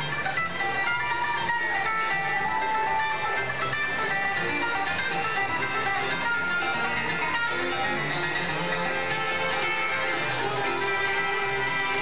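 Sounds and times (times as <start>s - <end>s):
acoustic guitars: 0.0s - 12.0s
fiddle: 0.0s - 12.0s
mandolin: 0.0s - 12.0s
upright bass: 0.0s - 12.0s.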